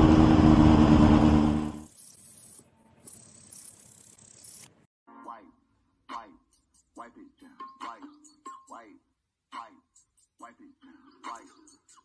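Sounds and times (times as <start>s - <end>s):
motorcycle engine running: 0.0s - 1.9s.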